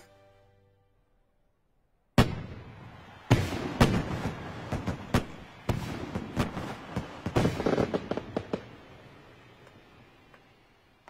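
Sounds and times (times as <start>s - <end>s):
fireworks bangs: 2.2s - 11.0s.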